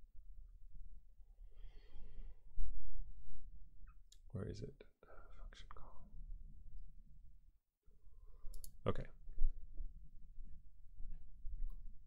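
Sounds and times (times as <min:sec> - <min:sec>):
computer mouse clicks: 0:08.5 - 0:08.8
light ticks: 0:08.5 - 0:08.8.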